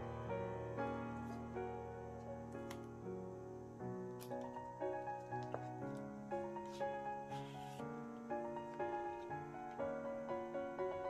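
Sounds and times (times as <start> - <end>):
slow solo piano: 0.0 - 11.0
cardboard sleeve rustles: 4.2 - 9.8.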